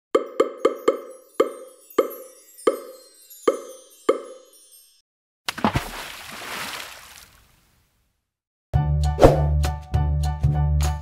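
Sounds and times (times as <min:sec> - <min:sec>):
liquid splashing sound effect: 0:05.5 - 0:07.5.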